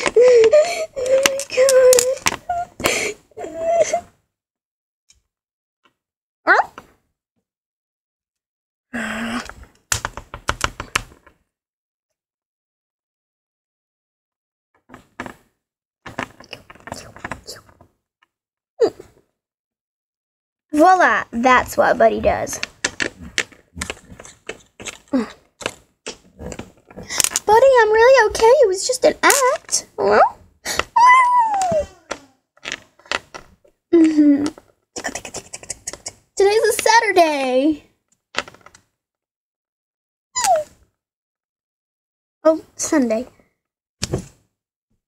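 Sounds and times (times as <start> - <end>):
child sighing: 30.7 - 32.4.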